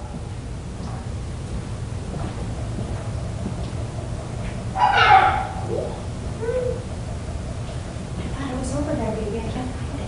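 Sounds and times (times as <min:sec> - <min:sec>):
low background rumble: 0:00.0 - 0:10.0
dog barking: 0:04.8 - 0:05.7.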